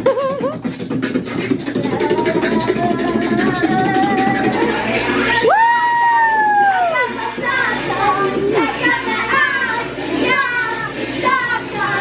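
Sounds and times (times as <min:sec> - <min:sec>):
backing music track: 0:00.0 - 0:12.0
girl singing: 0:01.6 - 0:12.0
children's voices: 0:01.7 - 0:05.4, 0:06.7 - 0:12.0.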